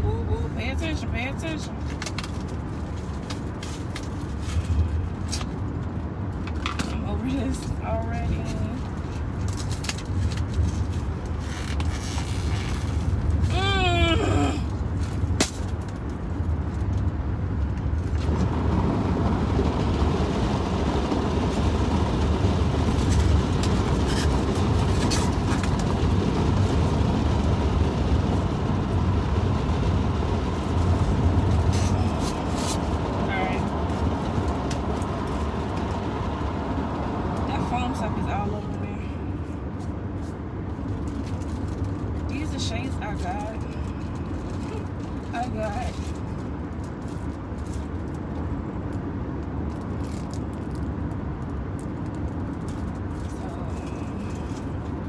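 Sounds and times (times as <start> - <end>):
car cabin engine rumble: 0.0 - 55.0.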